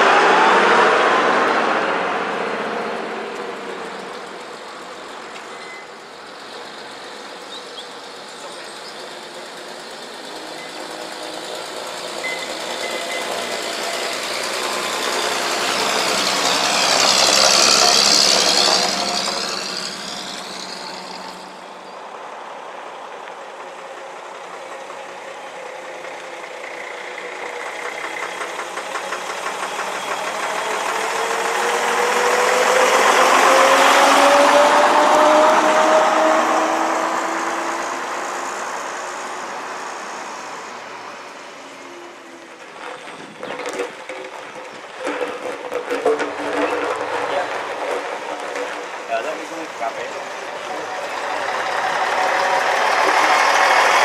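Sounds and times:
double-decker bus accelerating: 0.0 - 54.0
fire engine driving past: 0.0 - 54.0.

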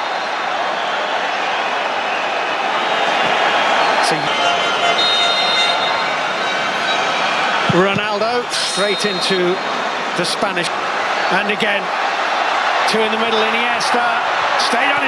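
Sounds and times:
crowd whistling: 0.0 - 13.8
stadium crowd noise: 0.0 - 15.0.

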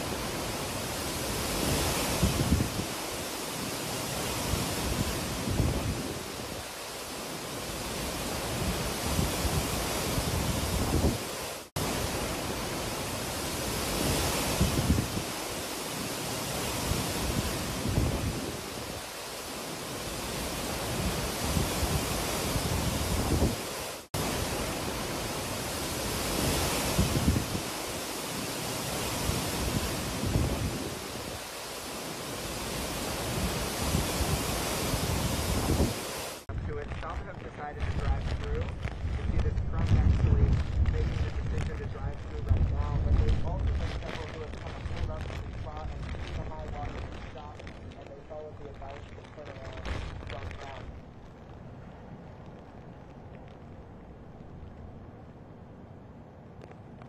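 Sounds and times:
wind buffeting microphone: 0.0 - 48.1
wind gusting through trees: 0.0 - 57.0
wind-driven rain: 0.0 - 57.0.

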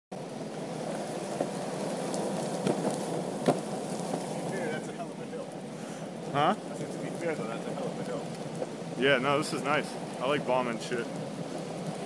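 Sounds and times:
wheels rolling on asphalt: 0.1 - 12.0.

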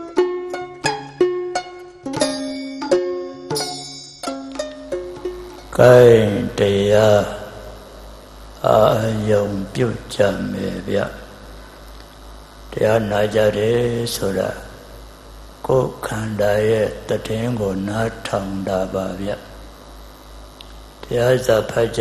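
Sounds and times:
plucked-string instrumental music: 0.0 - 6.4
low electrical hum: 0.0 - 22.0
man intoning through a microphone: 5.8 - 7.7.

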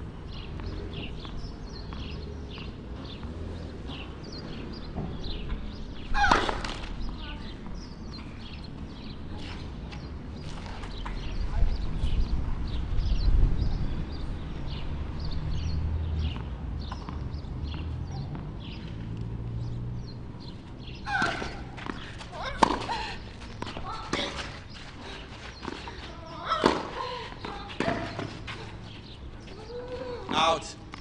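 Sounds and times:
racket hitting ball: 21.1 - 22.9, 26.5 - 28.4.

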